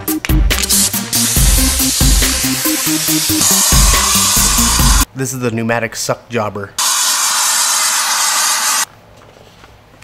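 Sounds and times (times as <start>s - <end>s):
pneumatic vacuum gun hissing: 0.6s - 5.1s.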